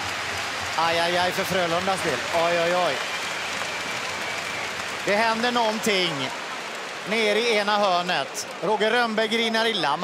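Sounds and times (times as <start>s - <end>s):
arena crowd applauding: 0.0s - 10.0s.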